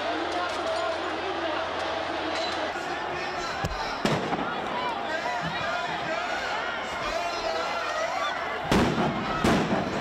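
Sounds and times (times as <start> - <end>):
crowd shouting: 0.0 - 10.0
loud bangs: 8.6 - 10.0.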